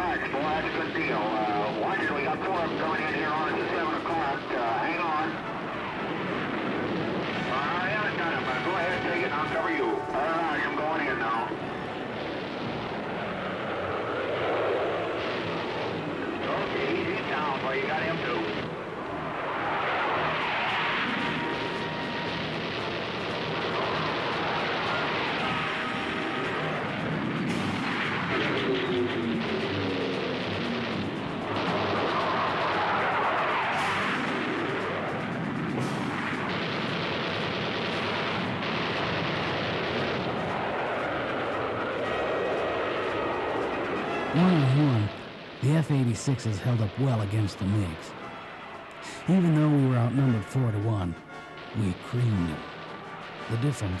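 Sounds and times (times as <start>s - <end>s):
orchestral film music: 0.0s - 36.7s, 38.0s - 54.0s
jet aircraft noise: 0.0s - 54.0s
gunfire bangs: 0.1s - 9.7s, 21.1s - 35.1s, 35.8s - 42.6s, 43.4s - 54.0s.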